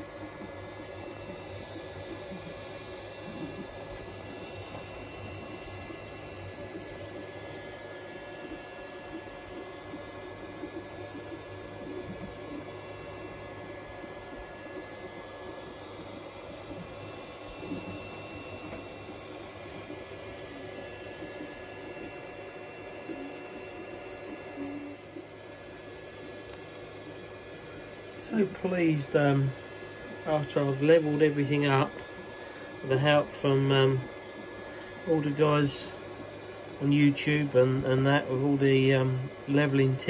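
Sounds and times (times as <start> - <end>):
cooling fans humming: 0.0 - 40.0.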